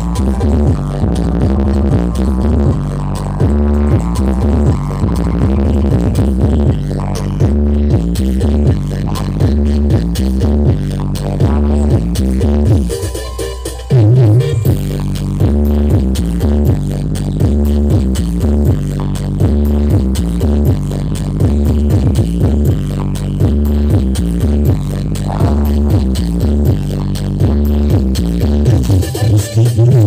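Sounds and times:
electronic dance music: 0.0s - 30.0s.

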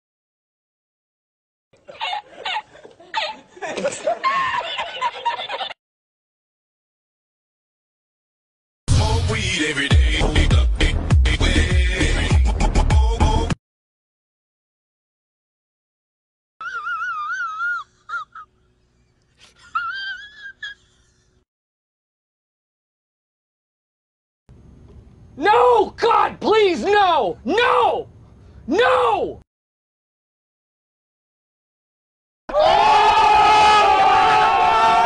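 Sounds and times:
man laughing hard: 1.8s - 5.8s, 19.4s - 21.2s.

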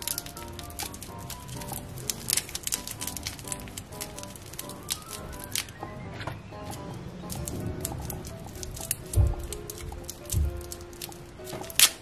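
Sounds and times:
plastic scissors snipping: 0.0s - 5.8s, 6.6s - 12.0s
light background music: 0.0s - 12.0s
plastic wrapper crinkling: 0.0s - 12.0s.

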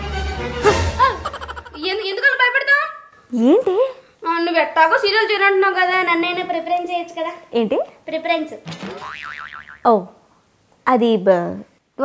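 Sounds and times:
cartoon boing sound effect: 8.7s - 9.9s.

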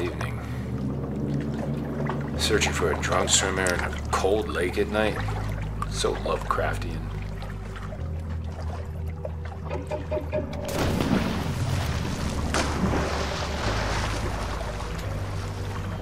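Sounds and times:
low steady hum: 0.0s - 16.0s
oars splashing in water: 0.0s - 16.0s.

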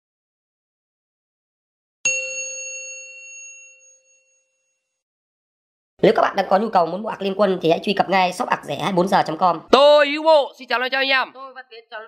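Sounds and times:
bright metallic chime: 2.1s - 4.8s.

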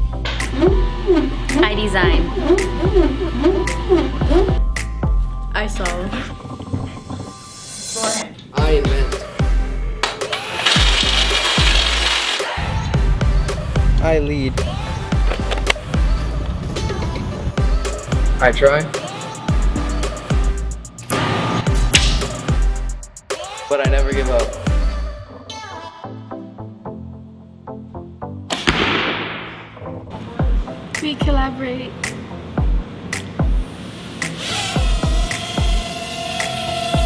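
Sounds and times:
background music with kick drum: 0.0s - 11.8s, 12.7s - 25.0s, 28.6s - 37.0s
cordless drill whirring: 10.4s - 12.5s, 34.4s - 37.0s
sharp snap of bow: 28.5s - 29.8s
arrow whooshing: 28.5s - 29.9s.

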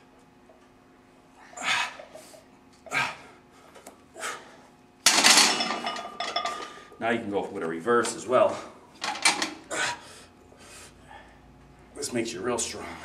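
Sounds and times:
barbell clanking onto rack: 5.1s - 6.6s
weight plates rattling: 5.1s - 6.8s.

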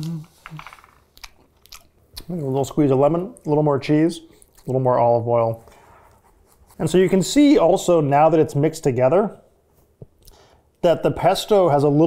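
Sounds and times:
person humming approval: 0.0s - 0.7s
person chewing food: 0.0s - 2.3s, 4.3s - 4.8s.

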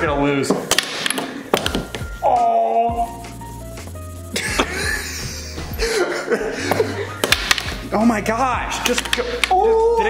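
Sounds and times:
background music: 0.0s - 10.0s
air hockey mallets striking puck: 0.5s - 2.1s, 7.2s - 7.8s, 8.8s - 9.6s.

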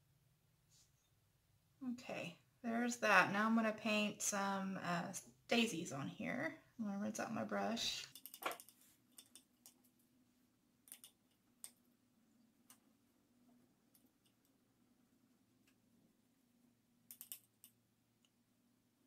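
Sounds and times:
paintbrush and supplies clicking: 8.0s - 10.0s, 10.8s - 11.8s, 17.1s - 18.4s.

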